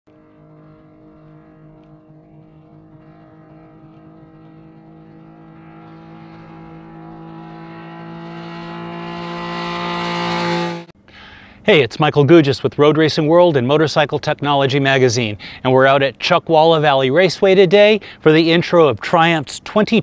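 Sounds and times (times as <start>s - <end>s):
motorcycle engine at high revs: 0.1s - 10.9s.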